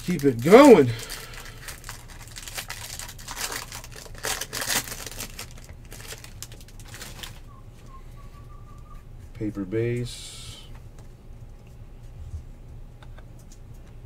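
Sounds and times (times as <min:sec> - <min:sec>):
foil wrapper tearing and crinkling: 0:00.0 - 0:07.4.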